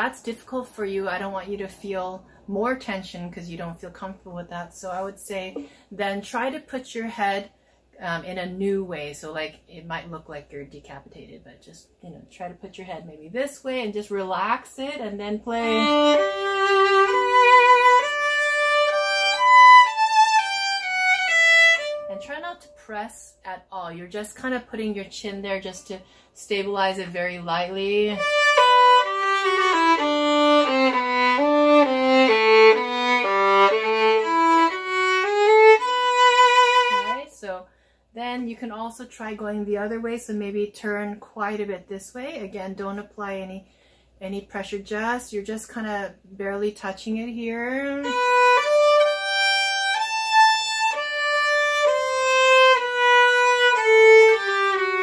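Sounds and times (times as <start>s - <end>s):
solo violin melody: 15.5s - 22.8s, 28.1s - 37.2s, 48.0s - 55.0s.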